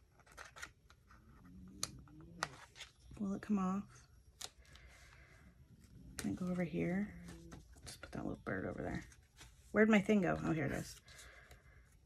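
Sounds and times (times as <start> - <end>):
paper rustling: 0.0 - 3.2.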